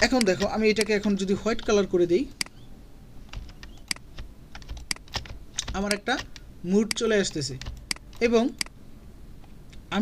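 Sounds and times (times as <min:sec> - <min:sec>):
keyboard and mouse clicks: 0:00.0 - 0:02.6, 0:03.3 - 0:08.8.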